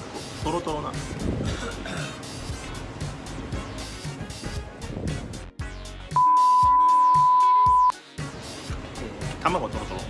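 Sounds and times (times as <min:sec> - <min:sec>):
background music: 0:00.0 - 0:10.0
high-pitched electronic bleep: 0:06.1 - 0:08.0.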